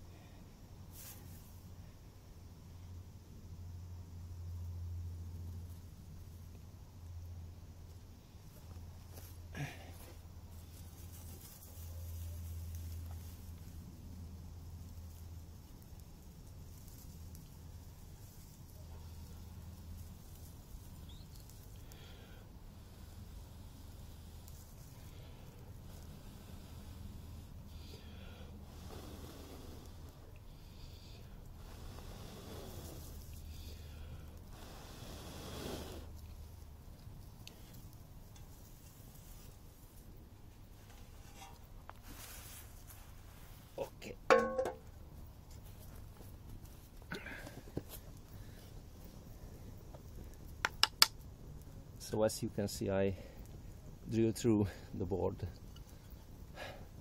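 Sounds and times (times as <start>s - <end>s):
soft breaths blowing: 0.0s - 3.0s, 8.1s - 44.0s, 45.2s - 50.6s, 51.2s - 57.0s.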